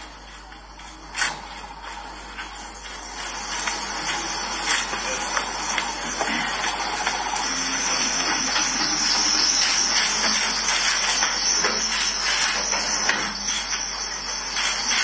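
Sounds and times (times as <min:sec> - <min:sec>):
steady loud hiss: 0:00.0 - 0:15.0.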